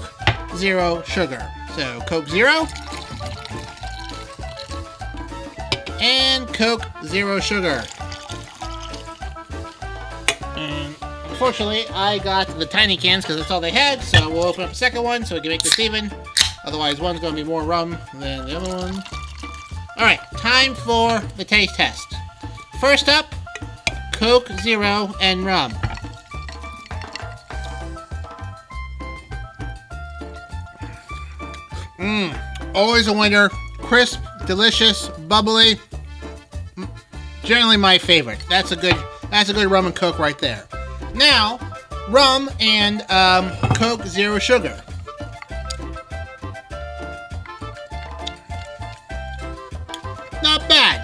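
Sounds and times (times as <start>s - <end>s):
background music with bass pulse: 0.0s - 51.0s
cola poured into glass of ice: 2.6s - 5.0s, 7.6s - 10.3s, 18.4s - 20.4s, 25.6s - 28.4s.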